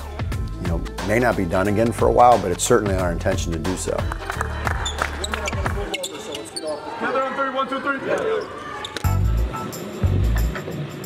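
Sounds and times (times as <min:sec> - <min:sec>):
music with heavy bass: 0:09.1 - 0:10.7.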